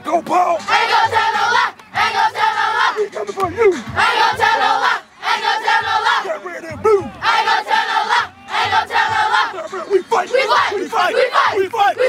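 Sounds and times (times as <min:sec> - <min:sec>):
group shouting a chant: 0:04.0 - 0:06.4, 0:07.0 - 0:12.0.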